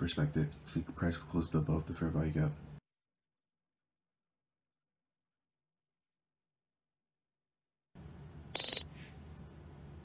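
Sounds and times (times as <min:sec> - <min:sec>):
high-pitched electronic alert beep: 0:08.6 - 0:08.8.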